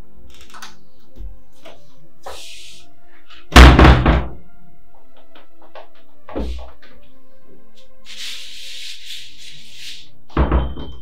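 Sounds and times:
background music: 0.0s - 11.0s
wooden door banging: 3.6s - 4.4s.

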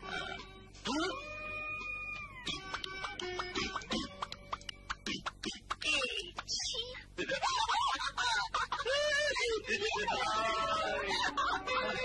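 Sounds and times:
background music held notes: 0.0s - 5.1s, 9.6s - 12.0s.

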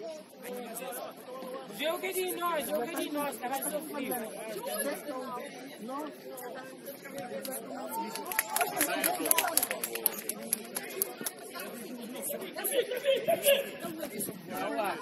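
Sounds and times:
players calling and chattering: 0.0s - 15.0s.

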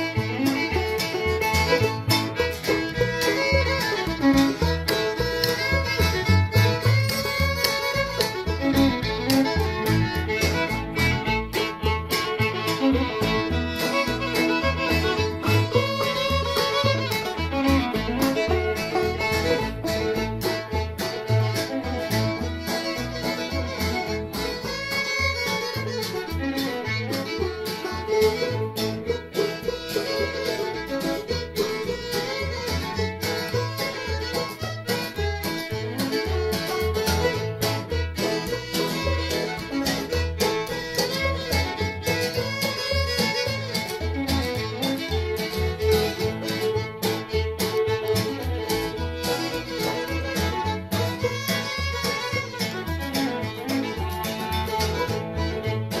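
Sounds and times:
acoustic guitar: 0.0s - 56.0s
fiddle melody: 0.0s - 56.0s
plucked upright bass: 0.0s - 56.0s.

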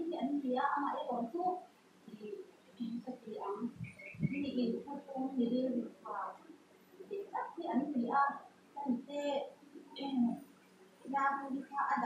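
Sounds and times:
woman speaking: 0.0s - 6.5s, 7.1s - 12.0s
bird calling: 2.3s - 4.7s.

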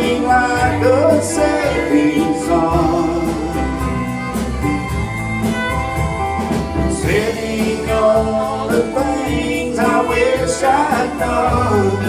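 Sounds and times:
man singing: 0.0s - 4.4s, 6.9s - 12.0s
country band playing: 0.0s - 12.0s.

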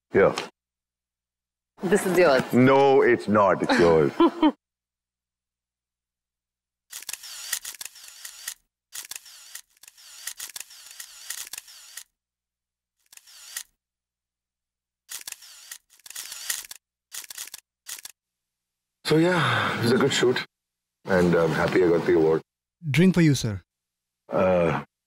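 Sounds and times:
camera shutters clicking: 6.9s - 12.1s, 13.0s - 13.7s, 15.1s - 18.2s.

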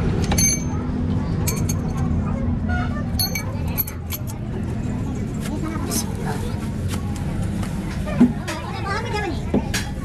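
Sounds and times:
faint voices: 0.0s - 10.0s
low workshop rumble: 0.0s - 10.0s.

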